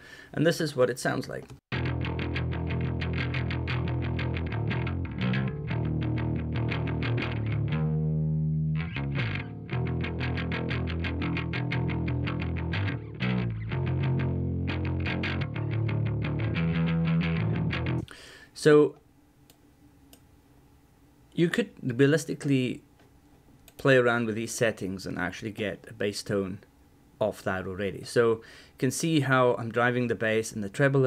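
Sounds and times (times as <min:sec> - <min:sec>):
electric bass through amp: 0:01.7 - 0:18.1.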